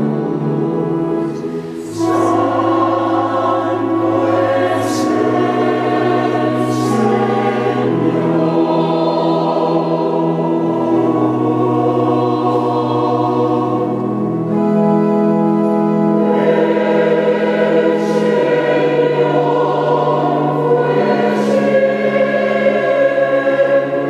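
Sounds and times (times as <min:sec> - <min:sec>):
mixed choir singing: 0:00.0 - 0:15.0, 0:16.0 - 0:24.0
sibilant consonants: 0:00.0 - 0:24.0.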